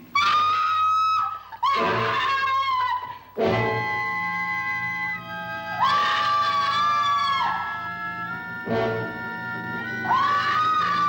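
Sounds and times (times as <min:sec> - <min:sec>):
high wailing tone: 0:00.4 - 0:11.0.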